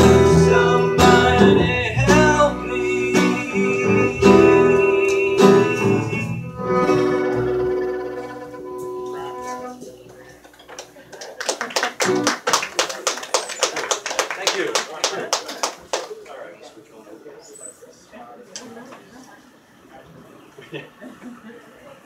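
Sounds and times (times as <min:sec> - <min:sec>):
acoustic guitar violin and bass chord: 0:00.0 - 0:10.4
audience murmur: 0:02.4 - 0:22.0
audience applauding: 0:10.1 - 0:16.4.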